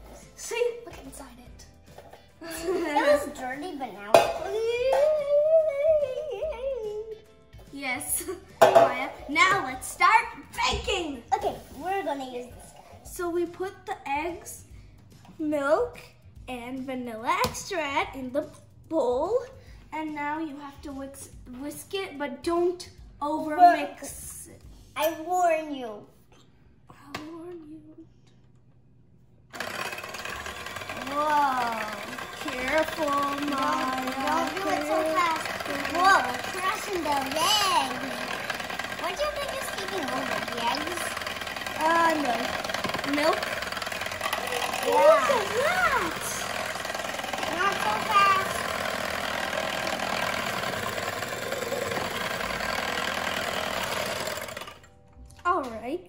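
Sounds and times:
electric hand mixer whirring: 0:01.9 - 0:05.4, 0:29.5 - 0:55.0.

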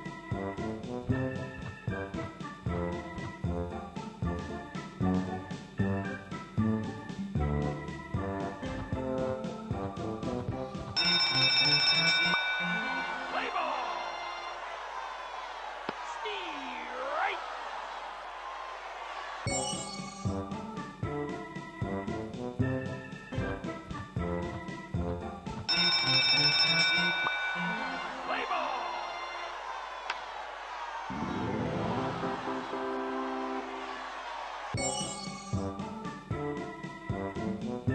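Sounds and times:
organ-style music chords: 0:00.0 - 0:10.7, 0:20.2 - 0:25.6, 0:27.5 - 0:29.8, 0:31.1 - 0:34.2, 0:35.6 - 0:37.9
ringing bell-like chime: 0:11.0 - 0:14.6, 0:19.5 - 0:20.4, 0:25.7 - 0:28.9, 0:34.8 - 0:35.6
crowd-like background noise: 0:13.0 - 0:20.0, 0:27.4 - 0:34.8.

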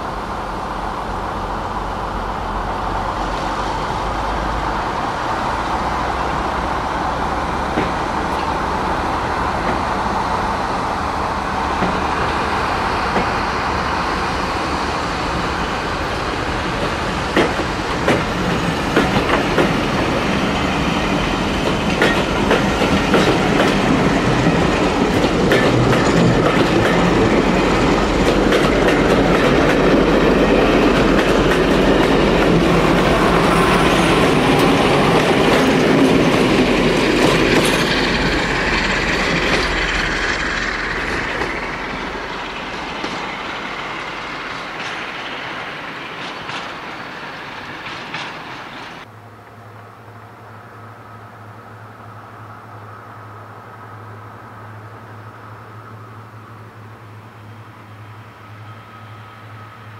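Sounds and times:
diesel locomotive passing: 0:00.0 - 0:59.9
train wheels clicking over rail joints: 0:07.4 - 0:10.3, 0:11.3 - 0:49.1.

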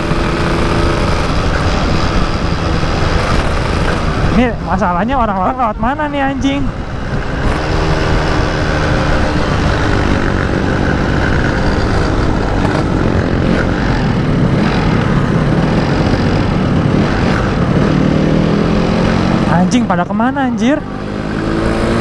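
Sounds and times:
motorcycle engine revving: 0:00.0 - 0:22.0
wind noise on microphone: 0:00.0 - 0:22.0.

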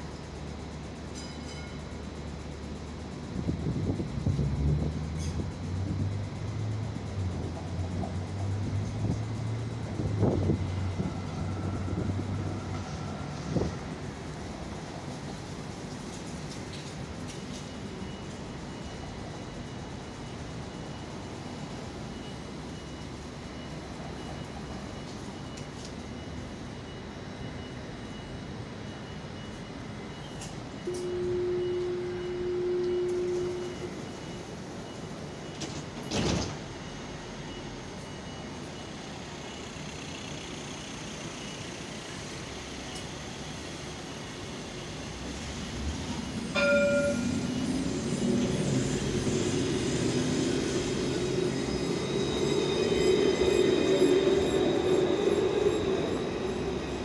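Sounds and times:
city traffic: 0:00.0 - 0:57.0
faint steady high tone: 0:17.8 - 0:35.6, 0:36.9 - 0:57.0
low vehicle drone: 0:45.2 - 0:57.0.

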